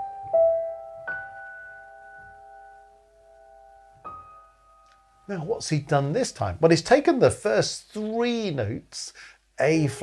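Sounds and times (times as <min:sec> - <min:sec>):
slow quiet piano notes: 0:00.0 - 0:06.2.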